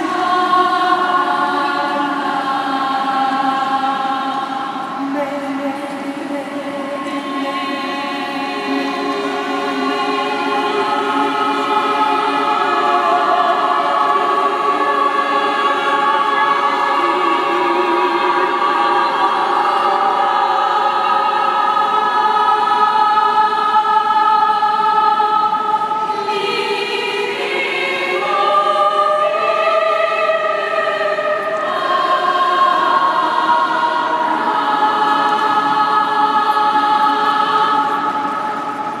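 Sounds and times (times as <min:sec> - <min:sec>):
choir singing sustained chords: 0:00.0 - 0:39.0.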